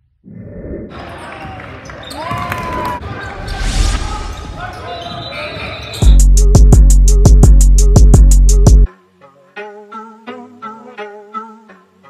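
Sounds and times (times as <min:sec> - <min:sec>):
players' voices echoing: 0:00.9 - 0:06.1
sneakers squeaking: 0:01.0 - 0:03.6, 0:04.3 - 0:06.2.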